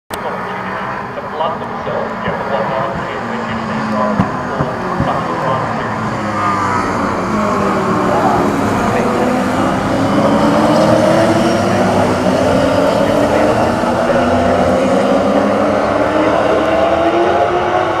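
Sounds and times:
racing car engines accelerating: 0:00.1 - 0:18.0.

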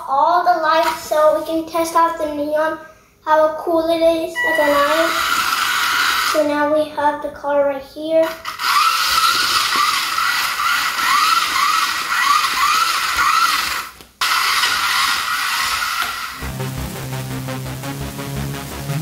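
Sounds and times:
swooping electronic tones: 0:04.4 - 0:05.8, 0:16.4 - 0:19.0
bass line and steady beat: 0:16.4 - 0:19.0.

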